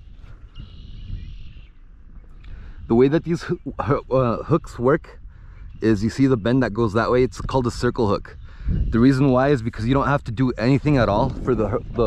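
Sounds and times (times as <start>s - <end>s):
low outdoor rumble: 8.9s - 12.0s.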